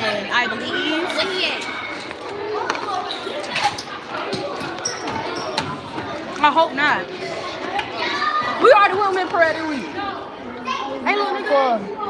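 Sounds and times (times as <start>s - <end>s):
children's voices in echoing hall: 0.0s - 12.0s.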